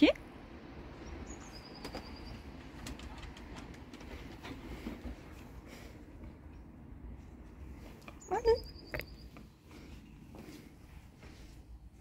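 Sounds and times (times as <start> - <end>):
high pulsing chirp: 0.9 - 2.6, 8.2 - 9.5.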